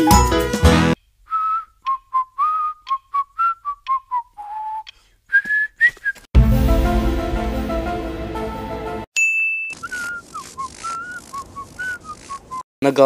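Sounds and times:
music: 0.0s - 1.0s, 6.4s - 9.1s
cartoon character whistling: 1.3s - 6.2s, 9.6s - 12.6s.

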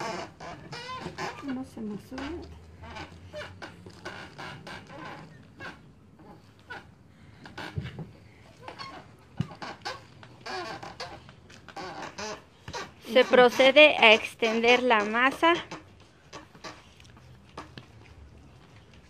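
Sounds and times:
hands kneading wet dough: 0.0s - 19.0s.

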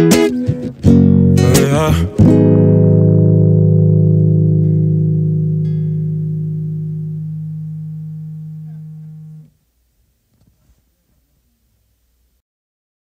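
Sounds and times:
acoustic guitar chord ringing: 0.0s - 9.5s
higher guitar note plucked: 0.0s - 9.5s.

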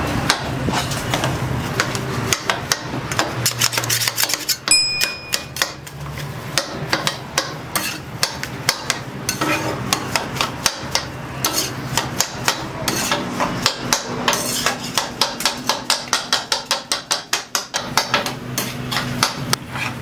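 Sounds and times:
spatula clacking on griddle: 0.2s - 20.0s.

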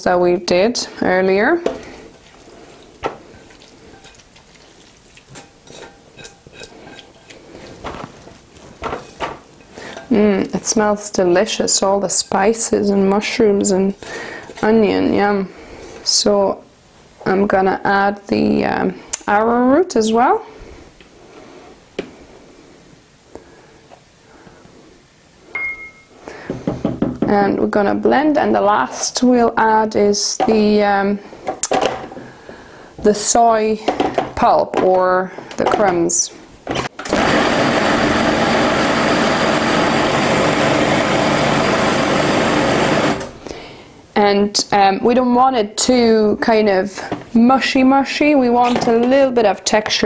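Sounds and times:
spatula scraping and tapping pan: 3.0s - 10.1s
short ringing clink: 25.6s - 26.1s.

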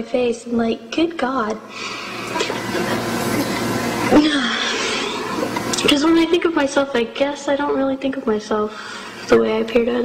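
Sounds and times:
faint hum: 0.0s - 10.0s
person talking: 5.6s - 10.0s.

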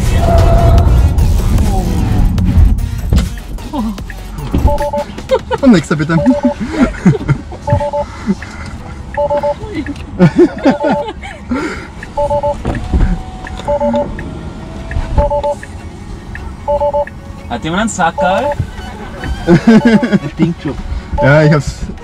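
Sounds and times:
short two-tone warning beep: 4.7s - 5.1s, 6.2s - 6.6s, 7.7s - 8.1s, 9.2s - 9.6s, 12.2s - 12.6s, 13.7s - 14.1s, 15.2s - 15.7s, 16.7s - 17.2s
person laughing: 5.0s - 8.4s, 9.6s - 11.8s, 18.6s - 20.9s.

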